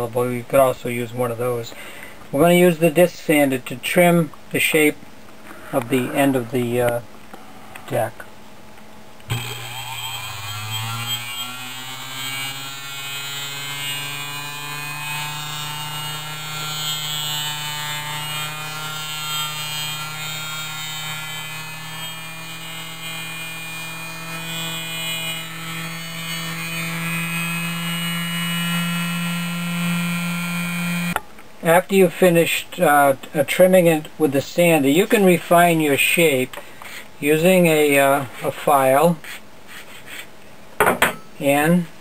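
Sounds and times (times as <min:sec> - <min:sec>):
disc sander humming: 0:09.3 - 0:31.2.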